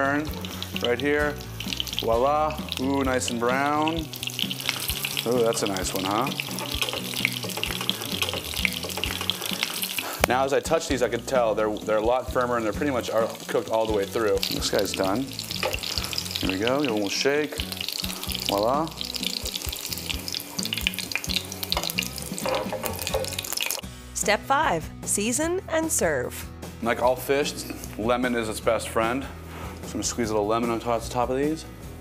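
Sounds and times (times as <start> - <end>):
food sizzling in a pan: 0.0 - 23.9
background music: 0.0 - 32.0.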